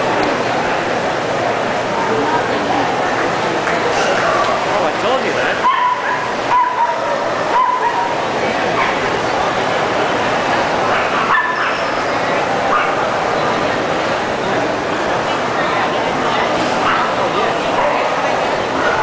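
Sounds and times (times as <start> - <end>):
crowd chatter in a hall: 0.0 - 19.0
small dog yapping: 5.6 - 8.1, 11.0 - 12.0.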